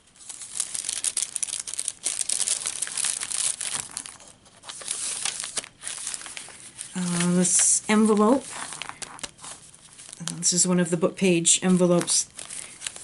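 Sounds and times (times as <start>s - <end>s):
paper crinkling and rustling: 0.1s - 11.0s, 11.6s - 13.0s.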